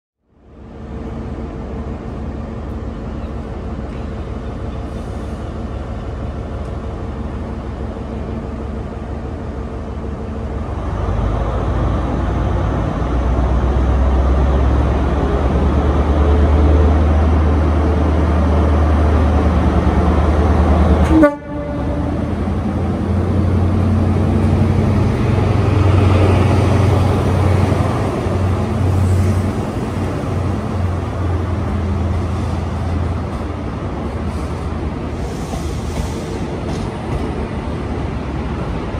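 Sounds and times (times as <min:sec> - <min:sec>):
diesel train engine rumble: 0:00.2 - 0:38.9
passing train coaches: 0:00.2 - 0:38.9
train horn: 0:21.0 - 0:22.4.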